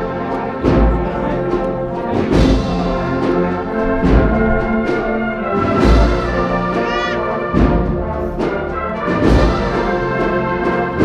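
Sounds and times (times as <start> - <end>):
brass band processional march: 0.0 - 11.0
slow deep drum beat: 0.6 - 8.6.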